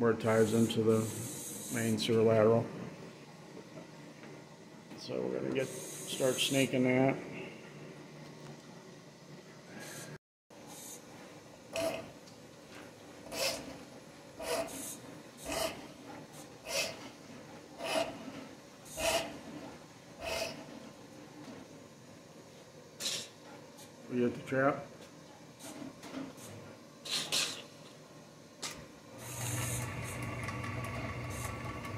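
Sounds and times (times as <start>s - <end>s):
drain-cleaning machine running: 29.2s - 31.9s.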